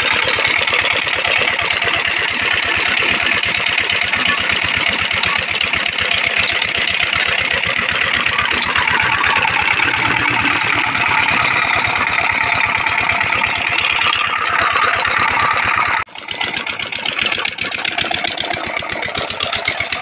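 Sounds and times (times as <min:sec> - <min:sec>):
diesel engine thudding steadily: 0:00.0 - 0:20.0.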